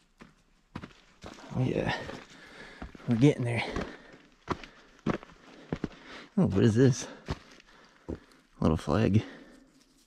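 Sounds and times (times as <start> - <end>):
footsteps on rocky trail: 0.0 - 8.6.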